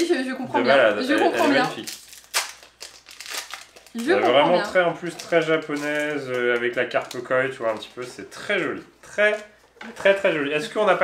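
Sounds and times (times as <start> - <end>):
foil wrapper crinkling and tearing: 1.5 - 8.1.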